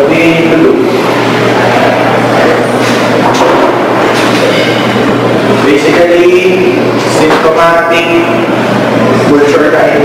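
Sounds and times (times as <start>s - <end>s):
low hum: 0.0s - 9.5s.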